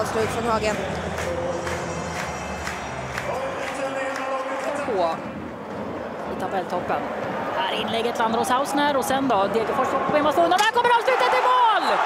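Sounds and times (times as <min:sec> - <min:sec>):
stadium crowd cheering and singing: 0:00.0 - 0:12.0.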